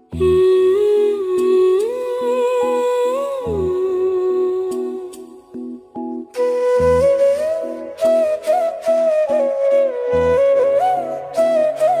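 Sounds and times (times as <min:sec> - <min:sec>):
hummed melody: 0:00.0 - 0:12.0.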